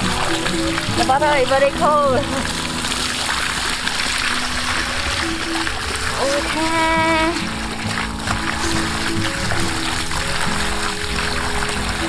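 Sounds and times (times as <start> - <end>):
water gushing from pipe: 0.0 - 12.0
water splashing on ground: 0.0 - 12.0.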